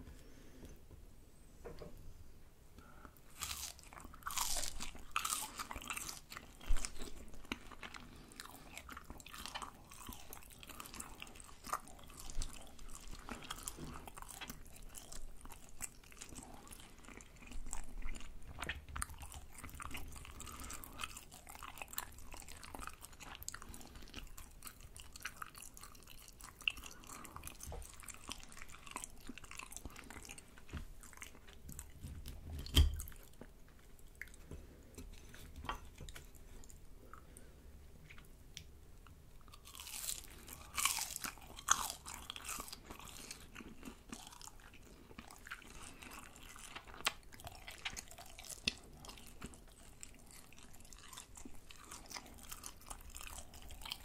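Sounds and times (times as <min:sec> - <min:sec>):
crunchy bites: 0:03.3 - 0:15.7, 0:39.5 - 0:44.5
wet sticky chewing: 0:03.3 - 0:34.4, 0:38.0 - 0:54.0.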